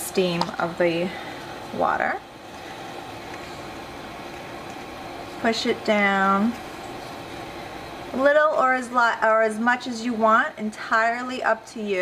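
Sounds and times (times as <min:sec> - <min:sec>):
water boiling in a pan: 0:00.0 - 0:12.0.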